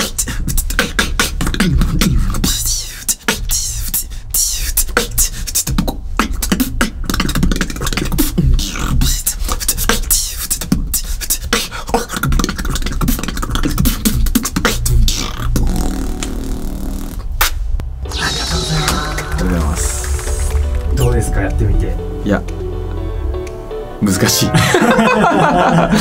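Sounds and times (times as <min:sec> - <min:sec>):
human beatbox drum sounds: 0:00.0 - 0:21.3
low vocal bass tone: 0:13.5 - 0:17.2, 0:17.8 - 0:26.0.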